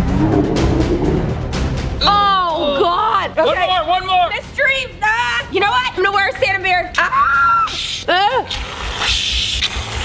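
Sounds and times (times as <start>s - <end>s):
aerosol can hissing: 7.7s - 10.0s.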